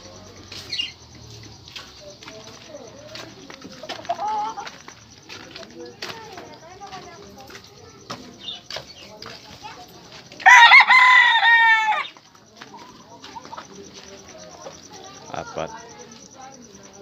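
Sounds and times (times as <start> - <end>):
chicken clucks: 0.0 - 6.3
rooster crowing: 10.4 - 12.2.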